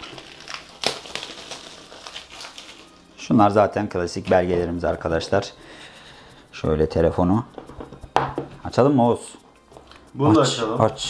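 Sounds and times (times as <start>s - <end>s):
plastic shrink-wrap crinkling: 0.0s - 3.2s.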